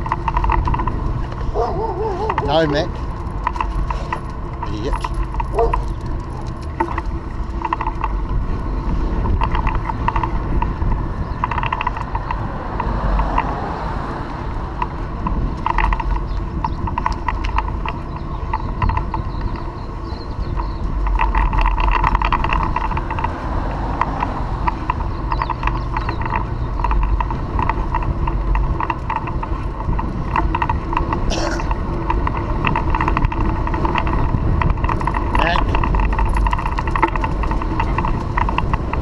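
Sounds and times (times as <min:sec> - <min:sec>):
irregular clicking and rattling: 0:00.0 - 0:39.0
wind rumbling on microphone: 0:00.0 - 0:39.0.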